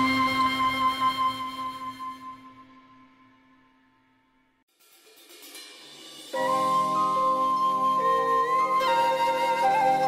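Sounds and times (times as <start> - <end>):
meditative music held tones: 5.4 - 10.0.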